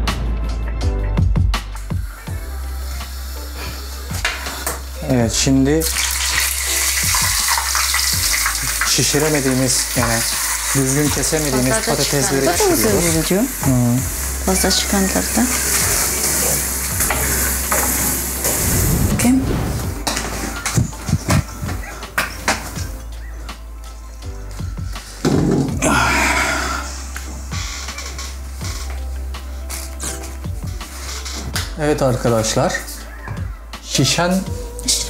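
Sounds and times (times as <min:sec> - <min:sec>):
background music: 0:00.0 - 0:35.0
hot oil sizzling: 0:02.0 - 0:21.5.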